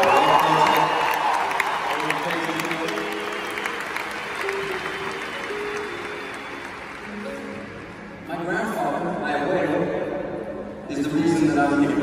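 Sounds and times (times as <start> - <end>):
audience applauding and cheering: 0.0 - 8.7
soft instrumental music: 1.9 - 12.0.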